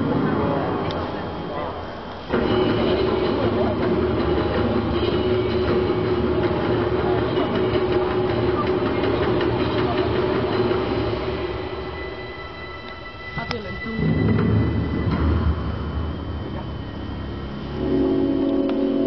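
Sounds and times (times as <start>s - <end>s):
faint murmuring chatter: 0.0s - 14.5s
sports hall hum: 0.0s - 19.0s.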